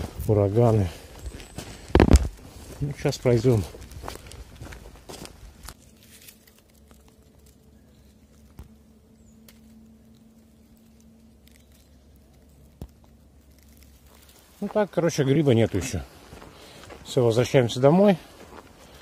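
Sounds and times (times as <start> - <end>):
footsteps crunching on twigs: 0.0 - 19.0
faint steady hum: 4.2 - 14.6.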